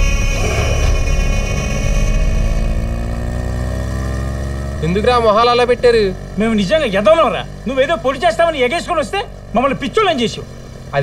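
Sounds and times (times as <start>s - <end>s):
motorcycle engines accelerating: 0.0s - 11.0s.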